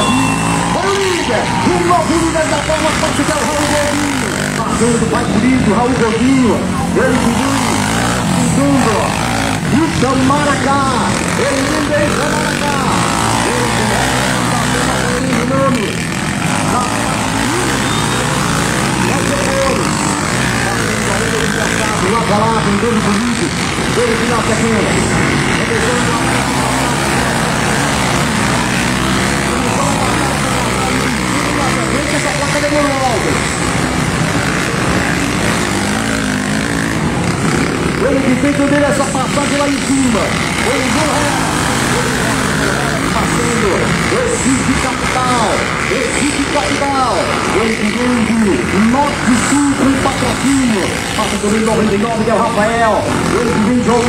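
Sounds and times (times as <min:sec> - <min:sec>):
distant motorcycle engines racing: 0:00.0 - 0:54.0.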